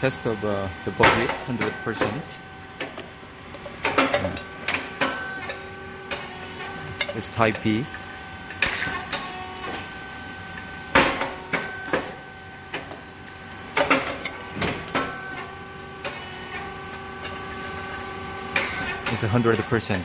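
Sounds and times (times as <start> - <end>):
motor hum: 0.0 - 19.7
sharp pops of puffing machine: 13.8 - 15.4.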